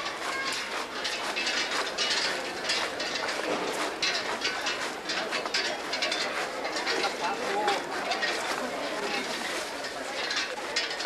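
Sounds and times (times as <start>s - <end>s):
metal poles clinking and rattling: 0.0s - 11.0s.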